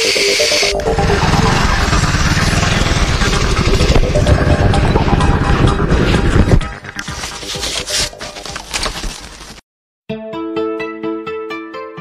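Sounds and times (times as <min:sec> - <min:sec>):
background music: 0:00.0 - 0:08.8, 0:10.1 - 0:12.0
motorcycle rattling clatter: 0:00.8 - 0:07.6.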